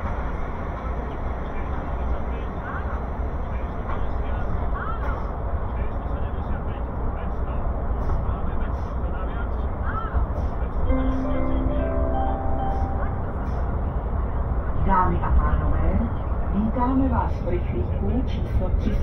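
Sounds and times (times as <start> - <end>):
train coach rumbling: 0.0 - 19.0.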